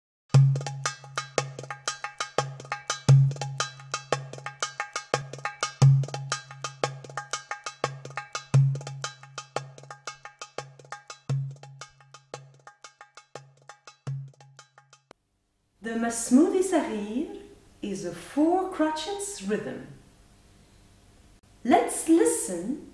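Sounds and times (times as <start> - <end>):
goblet drum rhythm: 0.3 - 15.1.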